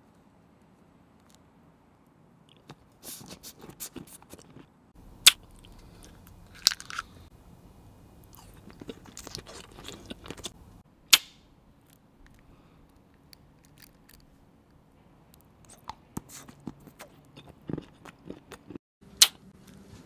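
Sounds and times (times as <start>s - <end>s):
mouth chewing candy: 2.5s - 4.7s, 5.3s - 7.3s, 8.2s - 10.6s, 15.4s - 19.4s
candy cracking: 5.3s - 7.2s, 11.8s - 14.3s.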